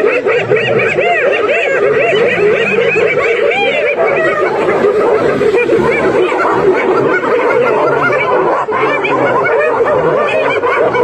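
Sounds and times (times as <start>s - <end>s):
hyenas giggling: 0.0s - 11.0s.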